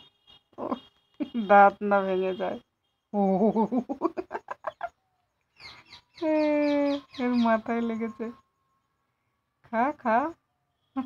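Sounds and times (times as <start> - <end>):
clucking cackles: 3.7 - 5.0.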